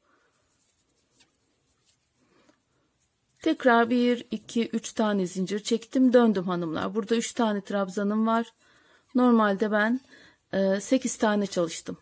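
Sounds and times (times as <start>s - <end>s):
crochet hook and yarn rustling: 0.0s - 12.0s.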